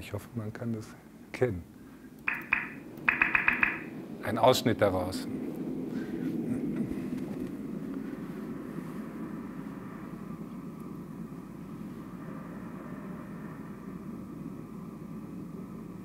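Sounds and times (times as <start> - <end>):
low rumbling drone: 2.4 - 16.0.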